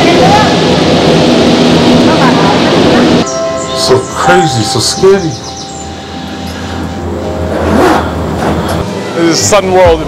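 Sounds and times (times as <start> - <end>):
cable car hum and rumble: 0.0 - 8.9.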